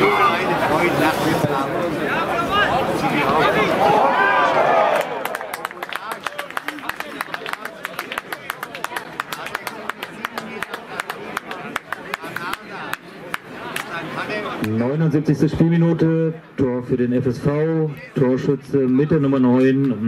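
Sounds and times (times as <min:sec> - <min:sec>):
crowd hand-clapping: 0:04.9 - 0:14.8.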